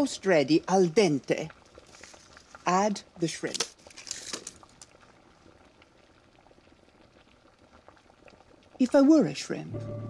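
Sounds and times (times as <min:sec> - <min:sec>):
pot bubbling: 0:00.0 - 0:10.0.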